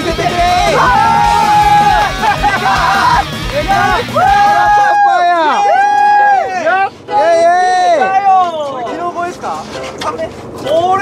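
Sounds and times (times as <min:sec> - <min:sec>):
excited voices exclaiming: 0:00.0 - 0:08.7.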